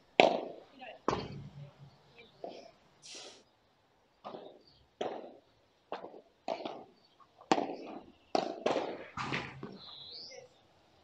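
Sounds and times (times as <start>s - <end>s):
rackets striking ball: 0.2s - 1.6s, 4.2s - 9.9s.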